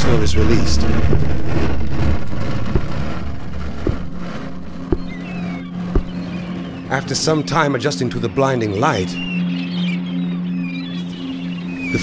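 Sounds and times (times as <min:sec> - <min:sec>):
steady low hum: 0:00.0 - 0:06.9
low rumbling drone: 0:00.0 - 0:08.3.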